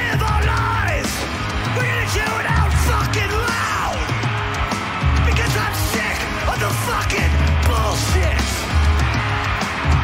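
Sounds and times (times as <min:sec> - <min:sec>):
singer yelling into microphone: 0:00.0 - 0:04.1, 0:05.2 - 0:08.6
punk rock band playing: 0:00.0 - 0:10.0.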